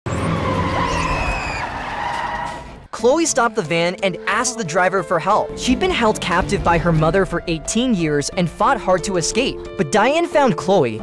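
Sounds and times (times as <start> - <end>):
brake squeal: 0.1 - 2.9.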